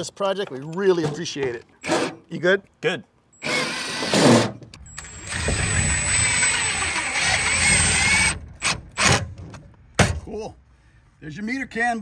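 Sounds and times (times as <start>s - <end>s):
cordless drill driving screw: 3.4s - 9.2s.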